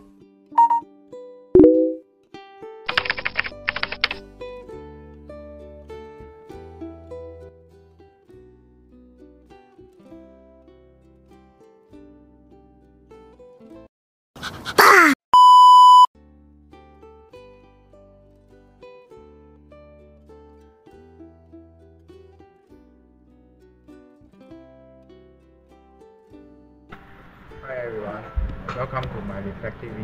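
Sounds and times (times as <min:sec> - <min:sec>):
censor bleep: 0:00.6 - 0:00.8, 0:01.6 - 0:02.0, 0:15.4 - 0:16.1
keyboard key clicks: 0:02.9 - 0:04.2
plucked-string music: 0:04.2 - 0:13.9, 0:16.7 - 0:28.6
light background music: 0:26.2 - 0:30.0.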